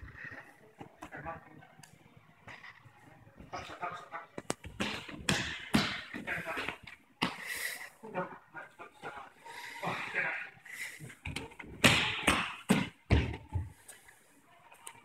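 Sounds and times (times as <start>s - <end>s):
thumps and slaps on mats: 4.4s - 7.4s, 11.3s - 13.7s
people breathing hard: 7.2s - 8.0s, 9.4s - 11.4s.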